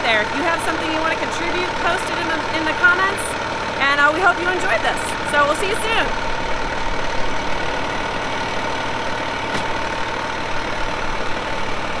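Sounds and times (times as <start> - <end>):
fire engine running: 0.0 - 12.0.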